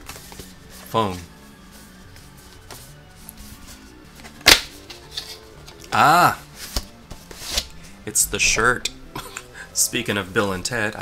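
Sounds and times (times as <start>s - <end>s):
faint instrumental music: 0.0s - 11.0s.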